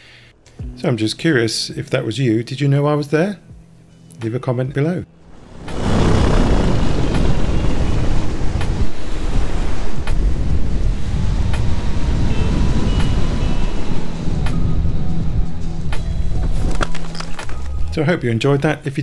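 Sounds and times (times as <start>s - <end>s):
background music: 0.0s - 19.0s
loud wind rush on microphone: 5.4s - 16.9s.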